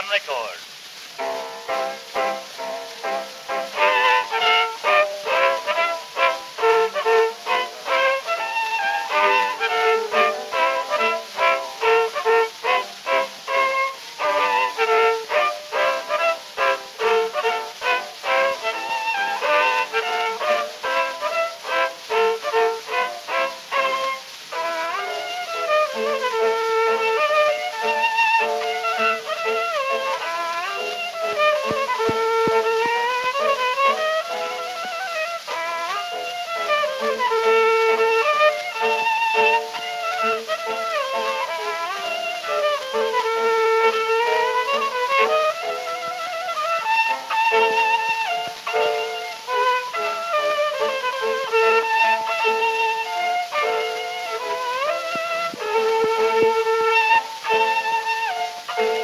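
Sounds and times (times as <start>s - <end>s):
solo violin playing: 0.0s - 59.0s.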